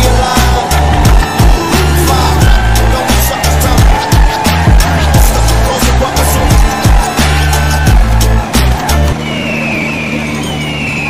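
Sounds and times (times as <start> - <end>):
diesel tractor engines running: 0.0 - 11.0.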